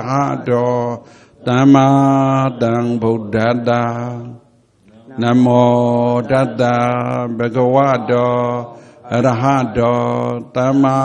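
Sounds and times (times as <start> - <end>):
monk chanting: 0.0 - 11.0.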